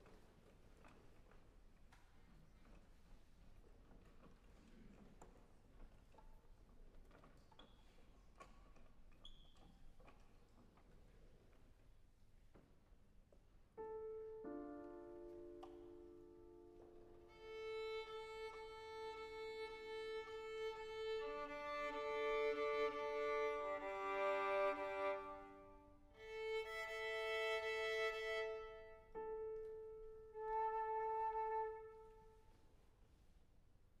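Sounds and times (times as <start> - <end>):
violin being tuned: 16.8 - 31.5.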